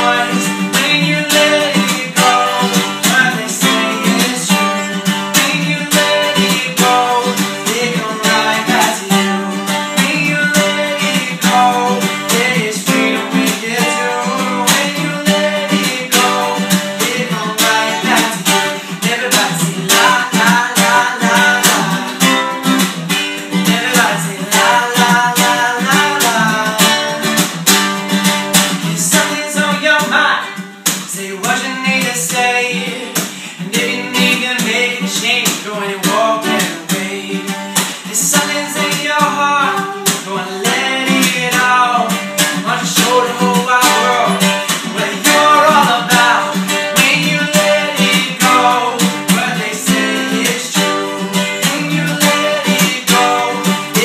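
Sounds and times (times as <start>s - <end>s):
man singing: 0.0s - 27.6s, 28.7s - 54.0s
acoustic guitars strummed: 0.0s - 54.0s.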